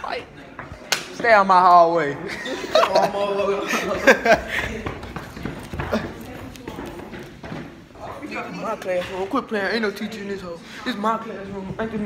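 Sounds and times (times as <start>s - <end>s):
teenagers talking and laughing: 0.0s - 12.0s.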